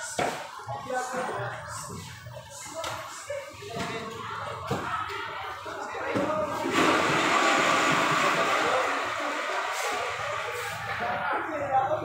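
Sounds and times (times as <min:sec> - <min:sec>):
loud steady rushing noise: 0:06.6 - 0:11.2.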